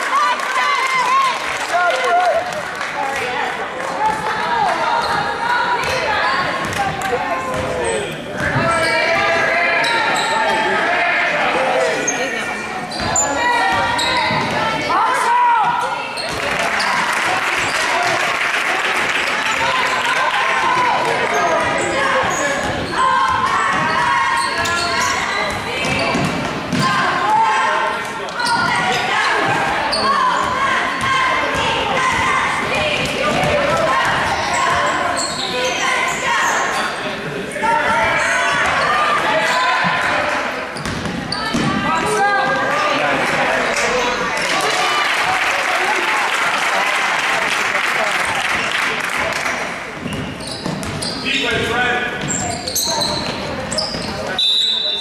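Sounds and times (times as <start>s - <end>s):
spectators' voices and shouts: 0.0s - 55.0s.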